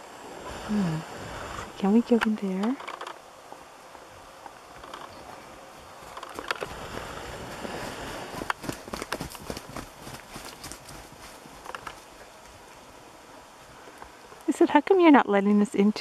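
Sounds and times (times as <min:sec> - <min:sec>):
cow hoofbeats on snow: 0:05.1 - 0:12.4.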